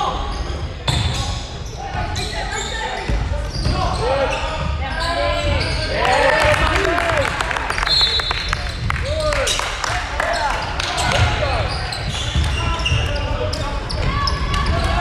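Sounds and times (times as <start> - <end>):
shoes squeaking on hardwood floor: 0.2 - 6.0, 10.2 - 15.0
referee's whistle: 7.7 - 8.6.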